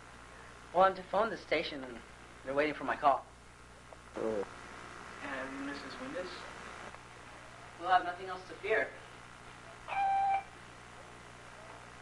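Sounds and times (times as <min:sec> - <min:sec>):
brief pitched tone: 0:09.9 - 0:10.5.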